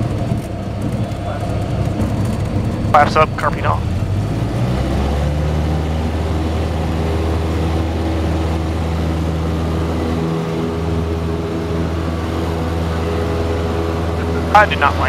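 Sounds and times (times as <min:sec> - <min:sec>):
light aircraft engine drone: 0:00.0 - 0:15.0.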